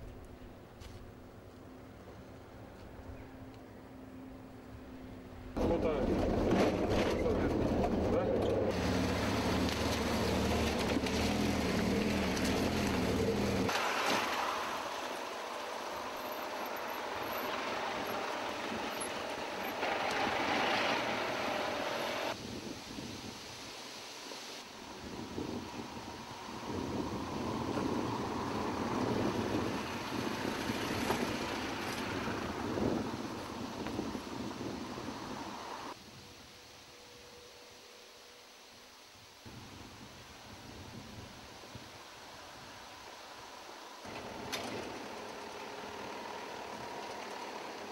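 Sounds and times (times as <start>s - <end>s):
engine humming: 0.0s - 22.4s, 43.4s - 47.9s
traffic and tyre noise: 0.0s - 47.9s.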